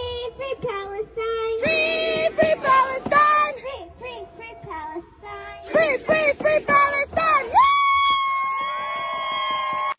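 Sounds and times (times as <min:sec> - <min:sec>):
chanted voices: 0:01.6 - 0:03.6, 0:05.6 - 0:07.5.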